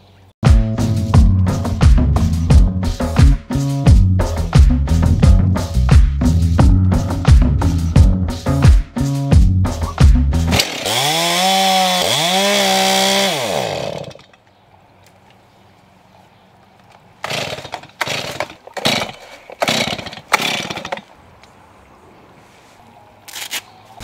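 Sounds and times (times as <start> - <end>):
chainsaw engine revving: 10.5 - 14.3, 17.2 - 21.1.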